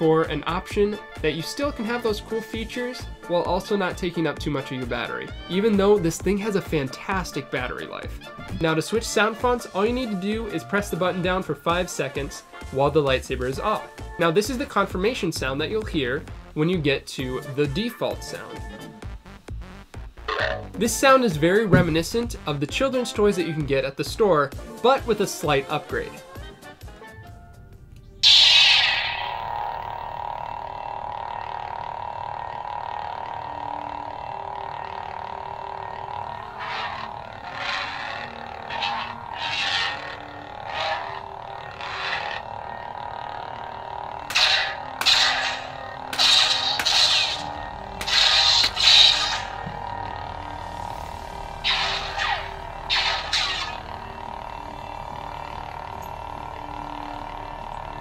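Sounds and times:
lightsaber humming: 0:20.2 - 0:22.5, 0:28.1 - 0:58.0
lightsaber swing swooshes: 0:28.2 - 0:29.4, 0:38.7 - 0:41.0, 0:44.3 - 0:49.6, 0:51.6 - 0:53.8
toy lightsaber igniting: 0:28.2 - 0:54.6.

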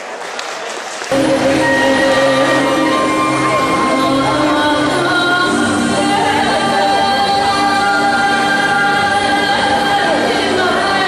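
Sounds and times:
held sung note: 0:01.1 - 0:11.0
song over sound system: 0:01.1 - 0:11.0.

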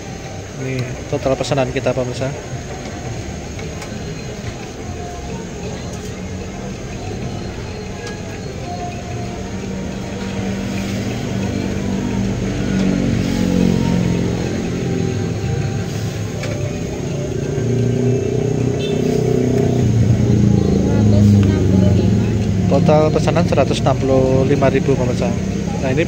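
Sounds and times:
vehicle engine running: 0:00.0 - 0:26.0.

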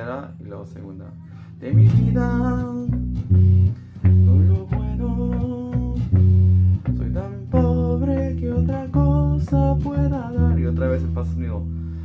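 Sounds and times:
electric bass line: 0:00.0 - 0:12.0
plucked guitar: 0:00.0 - 0:12.0.

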